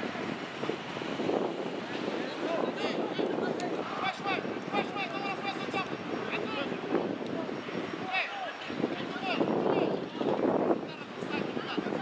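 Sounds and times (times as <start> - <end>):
people shouting short calls: 2.4 - 12.0.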